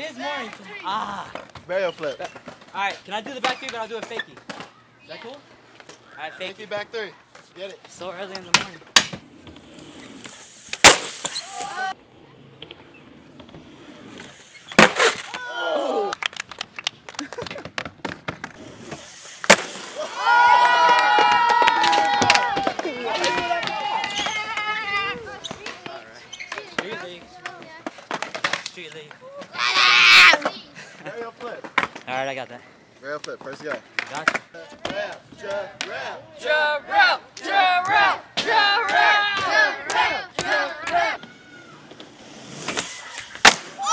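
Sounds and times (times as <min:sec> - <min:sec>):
skateboard popping and landing: 0:01.2 - 0:06.0, 0:07.3 - 0:15.5, 0:16.1 - 0:20.0, 0:20.9 - 0:29.6, 0:33.5 - 0:36.0, 0:37.9 - 0:43.9
voices shouting: 0:11.2 - 0:12.0, 0:15.2 - 0:16.2, 0:19.9 - 0:26.7, 0:29.2 - 0:30.7, 0:34.6 - 0:42.1, 0:42.9 - 0:43.9.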